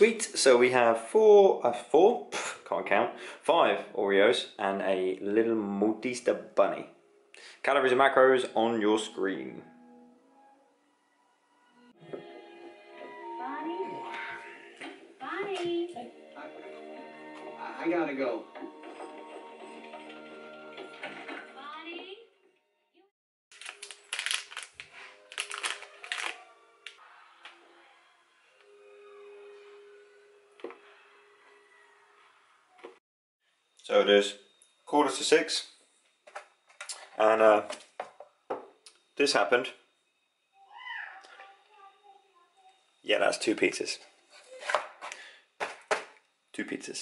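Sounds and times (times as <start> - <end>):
plastic packet crinkling: 23.5 - 27.0.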